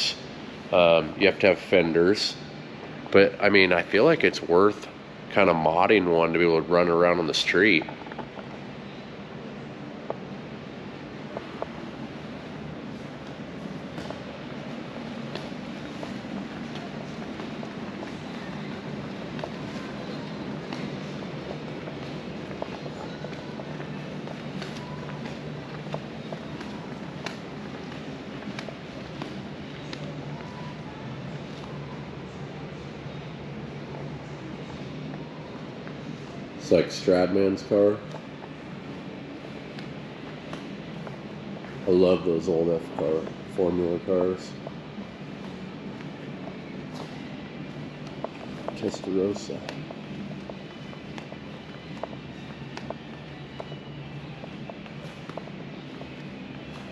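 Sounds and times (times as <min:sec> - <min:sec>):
room air handling hum: 0:00.0 - 0:56.9
footsteps on concrete floor: 0:11.3 - 0:30.8, 0:38.0 - 0:56.9.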